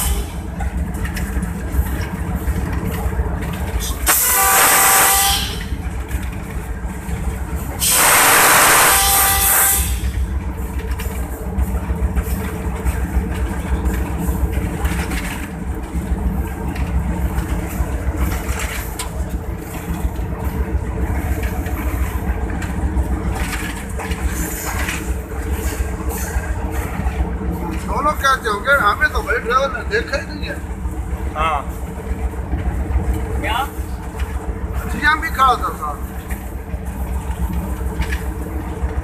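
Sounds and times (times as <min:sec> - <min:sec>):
locomotive engine drone: 0:00.0 - 0:39.0.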